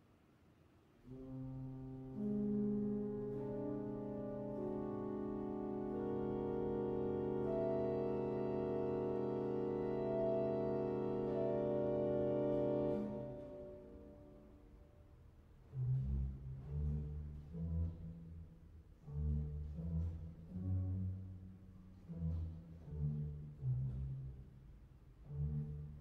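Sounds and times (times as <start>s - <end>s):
pipe organ chords: 1.1s - 14.5s.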